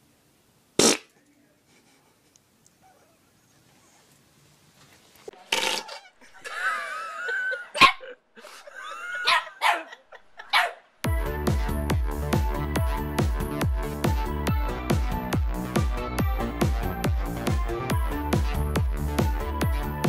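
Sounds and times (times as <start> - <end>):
fart: 0.8 - 1.2, 5.4 - 6.0
small dog barking and whining: 2.8 - 3.3.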